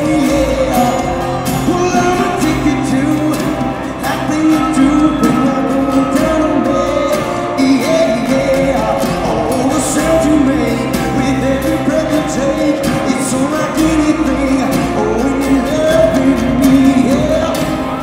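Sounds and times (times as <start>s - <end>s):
acoustic guitar: 0.0s - 18.0s
man singing: 0.0s - 18.0s.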